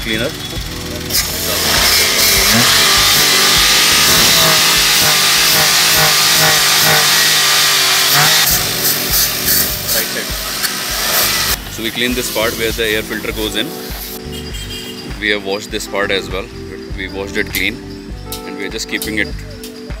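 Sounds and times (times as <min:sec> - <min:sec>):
aerosol spray hissing: 0:12.3 - 0:14.2.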